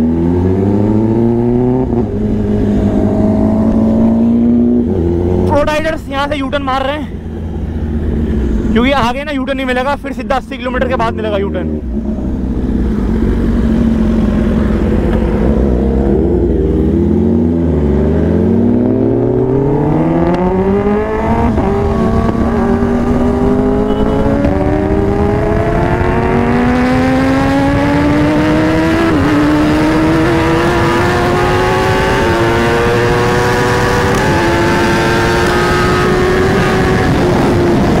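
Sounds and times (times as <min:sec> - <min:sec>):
motorcycle engine accelerating: 0:00.0 - 0:06.4, 0:07.1 - 0:09.0, 0:10.7 - 0:38.0
wind rush: 0:11.7 - 0:38.0.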